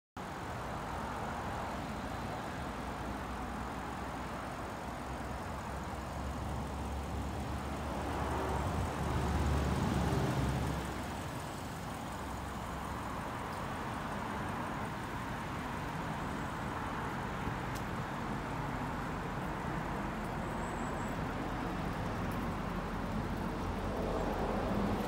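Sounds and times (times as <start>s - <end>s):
car engine idling: 0.6s - 25.0s.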